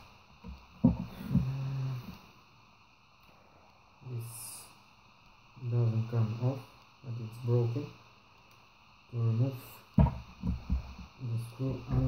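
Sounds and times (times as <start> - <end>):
dull thumps: 0.4 - 1.6, 10.0 - 11.1
sharp knock on table: 10.0 - 10.8.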